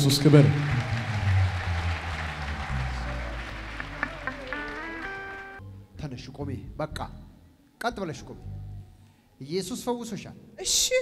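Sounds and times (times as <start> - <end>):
congregation noise: 0.0 - 5.6.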